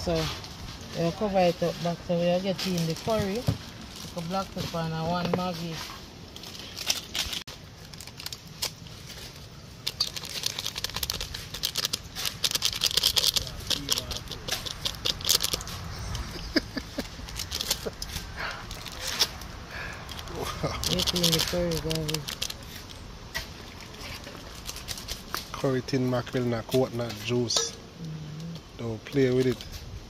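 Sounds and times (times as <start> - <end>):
packet crinkling and rustling: 2.4 - 27.6
small crackles: 5.6 - 27.4.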